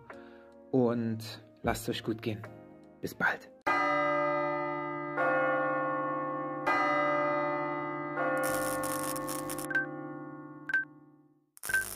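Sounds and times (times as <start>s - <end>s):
large bell ringing: 3.7s - 10.6s.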